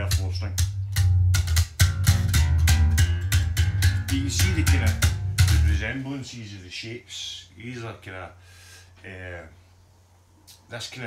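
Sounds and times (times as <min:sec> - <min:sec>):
electric bass plucked notes: 0:00.0 - 0:06.0.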